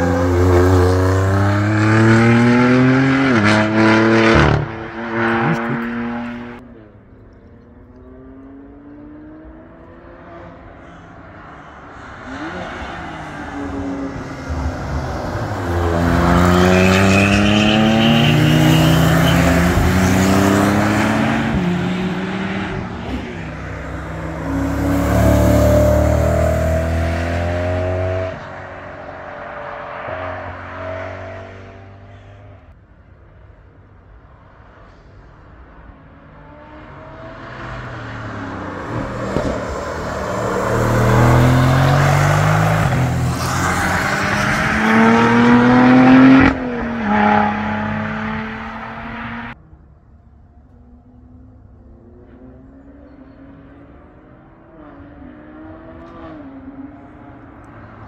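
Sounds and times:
race cars accelerating past: 0.0s - 6.9s, 7.6s - 32.6s, 36.3s - 49.6s.

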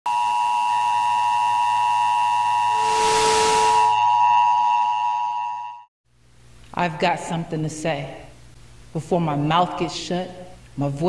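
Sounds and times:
steady electronic multi-pitch tone: 0.2s - 5.7s
low hum: 2.7s - 4.2s.

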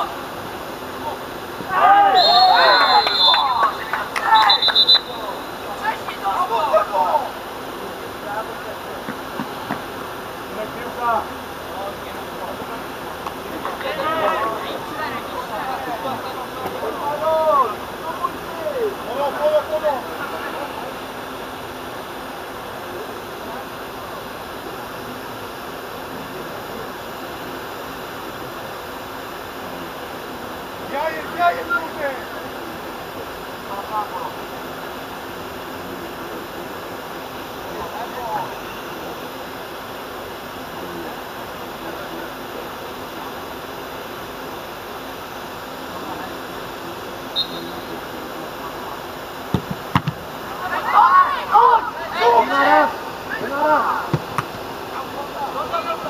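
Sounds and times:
players shouting and calling: 0.0s - 25.2s, 30.2s - 39.6s, 45.8s - 56.0s.

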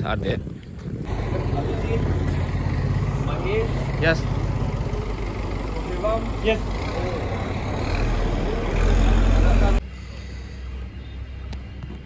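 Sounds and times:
minibus engine idling: 1.1s - 11.4s.

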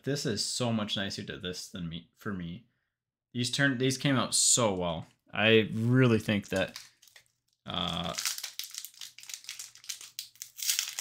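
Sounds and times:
foil wrapper crinkling: 6.2s - 11.0s.

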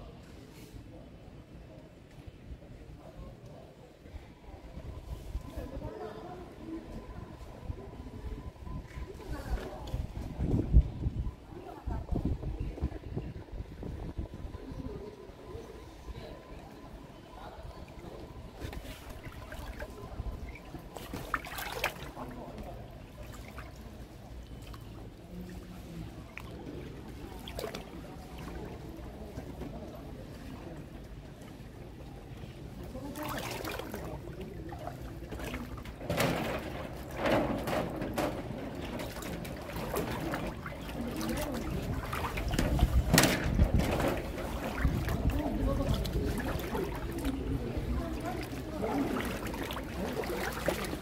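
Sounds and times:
floodwater sloshing: 16.5s - 51.0s.

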